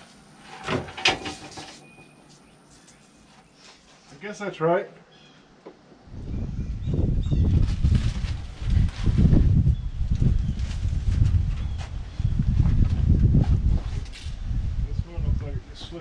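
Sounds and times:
mesh screen rustling and knocking: 0.4s - 2.0s
wind buffeting microphone: 6.0s - 16.0s.

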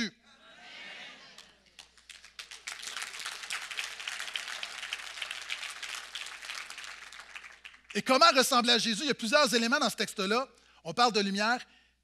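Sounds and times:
crowd applauding: 1.4s - 8.2s.

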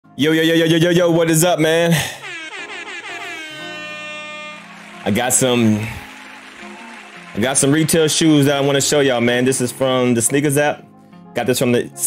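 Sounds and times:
air horn blast: 2.0s - 7.3s.

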